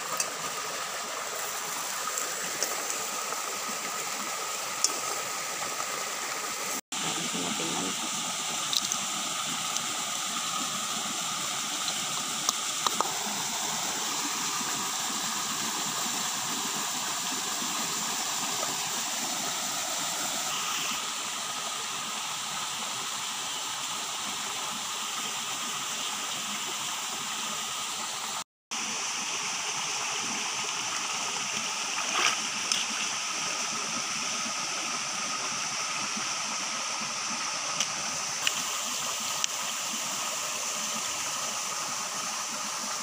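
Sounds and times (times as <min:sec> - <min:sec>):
stream running over rocks: 0:00.0 - 0:43.0.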